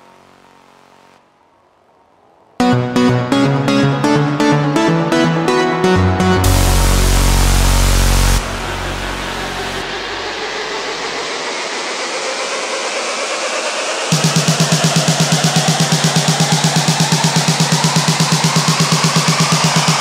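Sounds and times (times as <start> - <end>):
pulsing bass: 5.8 - 12.2, 14.1 - 20.0
rising noise sweep: 6.4 - 20.0.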